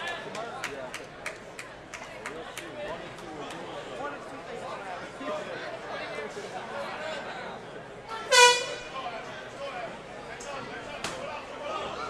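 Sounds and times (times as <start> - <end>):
crowd voices: 0.0 - 12.0
short horn blast: 8.3 - 9.0.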